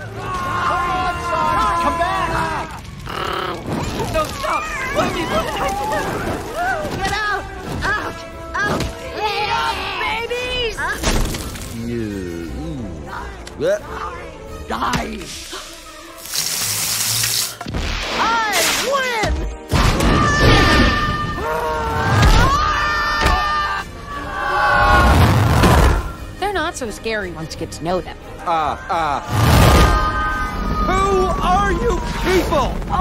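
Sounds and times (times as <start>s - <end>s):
corn sizzling in fire: 0.0s - 6.9s, 15.2s - 19.0s, 29.3s - 33.0s.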